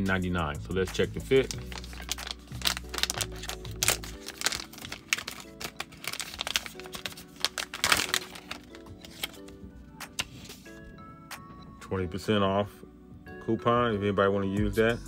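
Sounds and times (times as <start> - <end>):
background music: 0.0 - 15.0
plastic pouch crinkling: 1.2 - 9.5.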